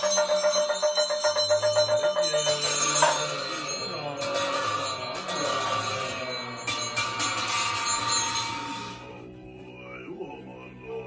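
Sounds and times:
hand bell jingling: 0.0s - 9.1s
monks chanting: 1.6s - 11.0s.

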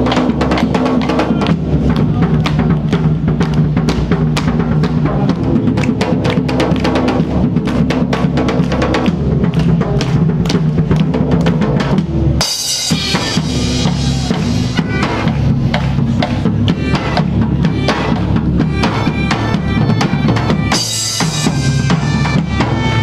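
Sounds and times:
bass drums beating: 0.0s - 23.0s
crashing cymbals: 12.4s - 17.9s
bagpipes playing: 12.8s - 15.8s, 16.6s - 23.0s.

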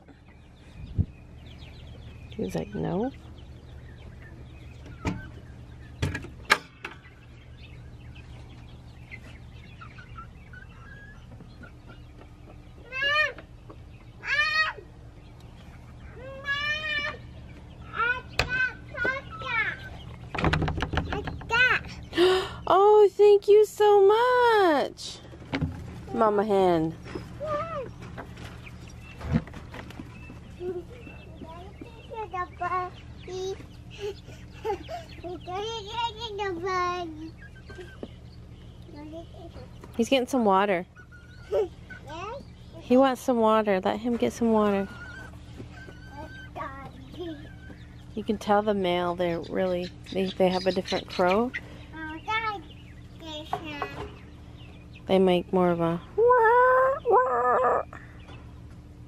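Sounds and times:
chicks cheeping: 0.0s - 59.0s.

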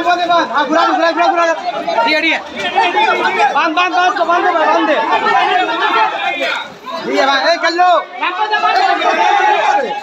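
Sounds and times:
men talking and calling: 0.0s - 10.0s.

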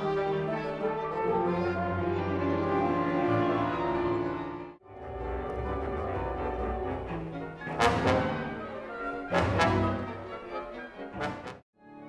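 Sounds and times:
chamber orchestra playing: 0.0s - 12.0s.

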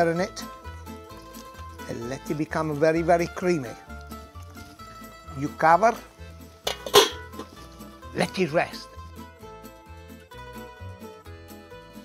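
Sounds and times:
background music: 0.0s - 12.0s
pan lid metallic clank: 6.6s - 7.6s.

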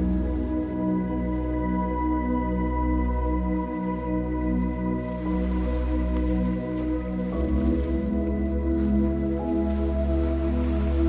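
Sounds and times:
ambient music with sustained chords: 0.0s - 11.0s.

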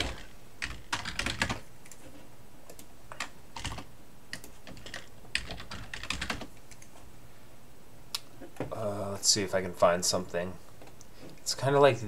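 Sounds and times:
typing on computer keyboard: 0.0s - 2.0s, 2.7s - 6.9s.

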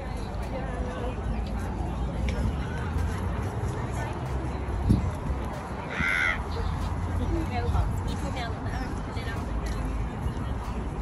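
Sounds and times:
faint distant voices: 0.0s - 11.0s
crow cawing: 5.9s - 6.4s.

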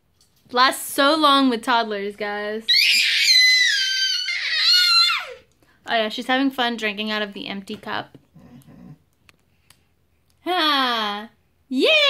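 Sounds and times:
toddler girl squealing: 2.7s - 5.5s.

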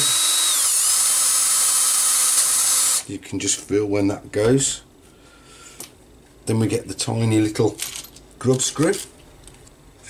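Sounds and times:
electric drill drilling plastic: 0.0s - 3.1s.

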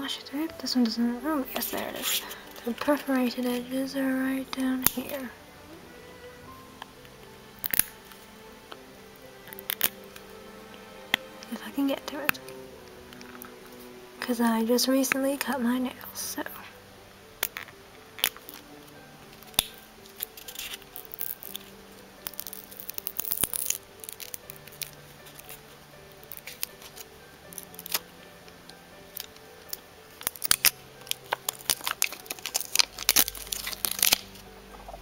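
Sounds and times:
soft background music: 0.0s - 35.0s
tape tearing rasps: 4.5s - 5.3s, 7.6s - 8.8s, 9.4s - 10.3s, 17.4s - 28.1s, 29.1s - 34.5s.

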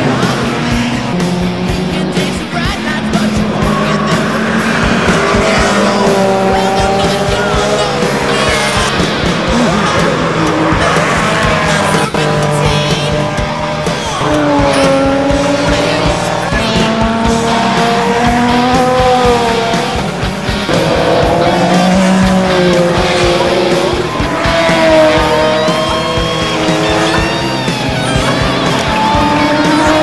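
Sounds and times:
background music: 0.0s - 30.0s
race cars passing at speed: 0.0s - 30.0s.

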